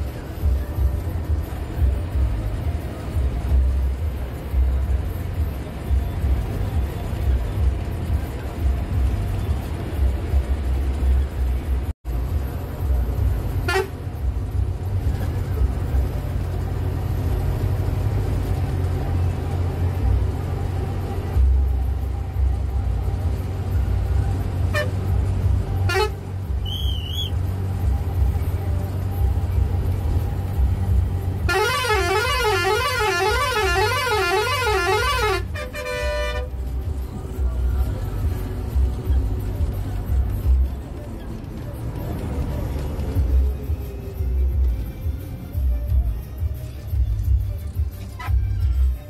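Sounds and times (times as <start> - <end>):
bus engine rumble: 0.0 - 49.0
short horn toots: 31.5 - 36.5
warbling horn: 31.5 - 36.5.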